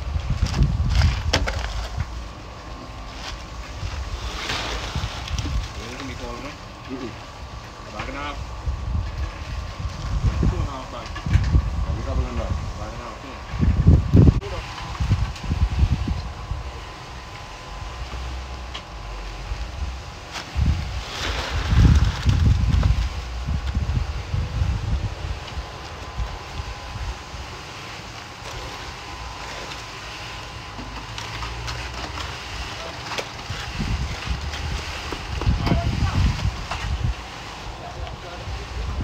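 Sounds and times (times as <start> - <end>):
wind buffeting microphone: 0.0 - 2.2, 3.7 - 5.9, 8.4 - 27.6, 33.4 - 37.4, 38.0 - 39.0.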